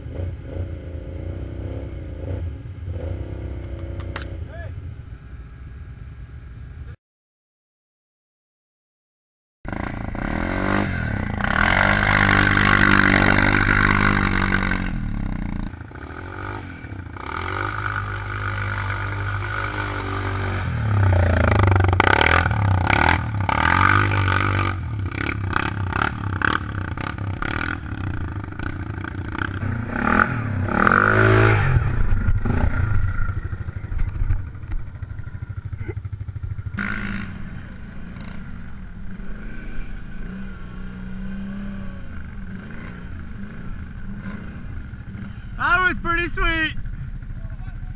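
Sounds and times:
atv engines revving: 0.0 - 6.9, 9.7 - 47.9.

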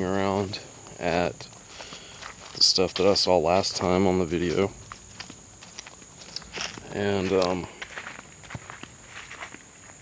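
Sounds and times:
footsteps on leaf-littered dirt: 0.0 - 10.0.

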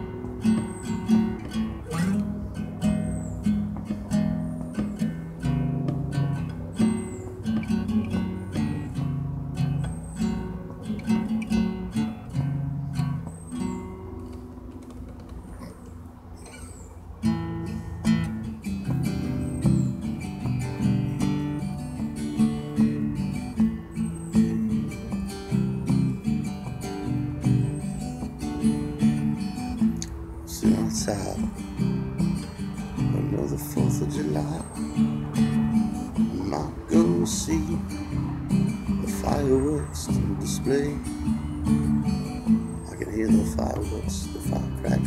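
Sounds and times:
acoustic guitar strummed: 0.0 - 45.0.

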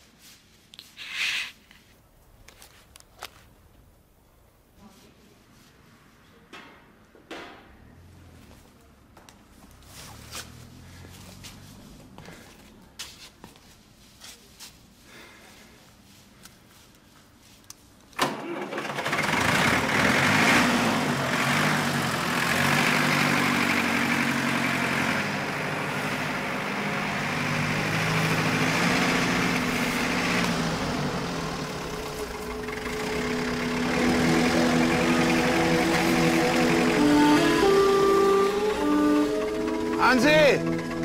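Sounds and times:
tractor engine running: 18.2 - 41.0
music with held notes: 32.4 - 41.0.

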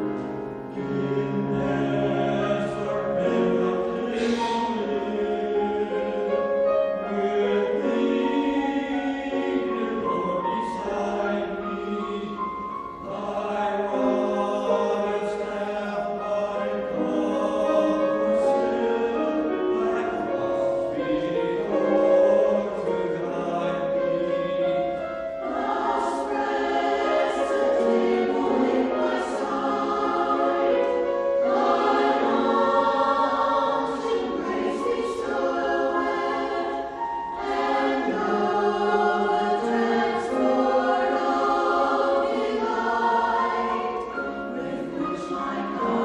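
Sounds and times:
choir singing: 0.0 - 46.0.

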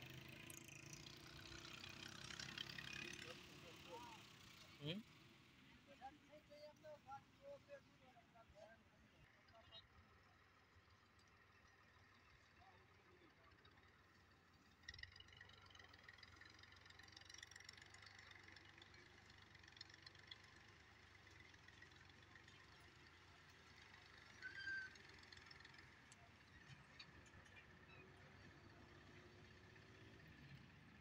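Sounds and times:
faint rural outdoor ambience: 0.0 - 31.0.

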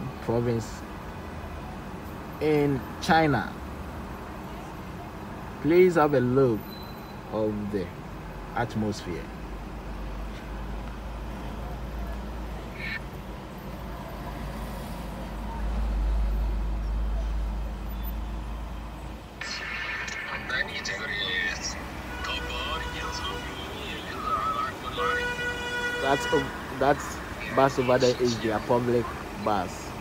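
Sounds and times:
engine and road rumble: 0.0 - 30.0
street noise: 0.0 - 30.0
car horns: 20.8 - 28.8.

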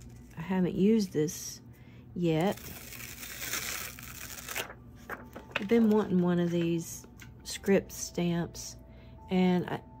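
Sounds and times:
plastic sheet crinkling: 2.4 - 6.2.

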